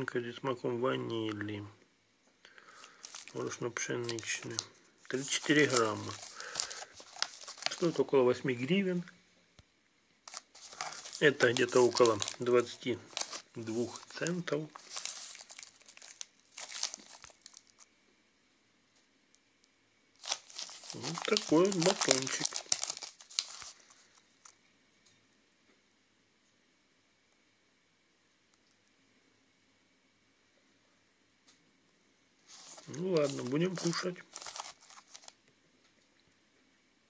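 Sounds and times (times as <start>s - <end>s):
plastic wrapper crinkling: 2.5s - 9.1s, 10.2s - 17.9s, 20.2s - 24.6s, 32.4s - 35.4s.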